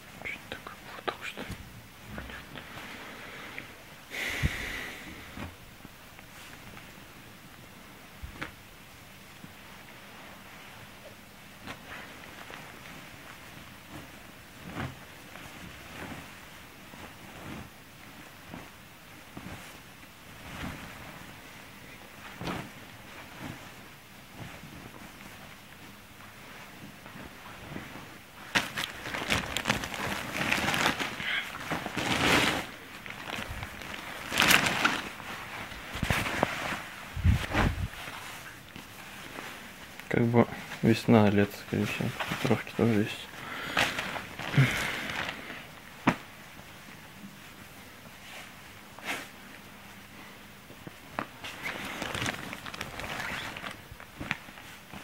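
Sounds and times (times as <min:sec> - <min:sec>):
fabric rustling: 0:05.0 - 0:08.6, 0:09.2 - 0:41.0, 0:41.7 - 0:55.0.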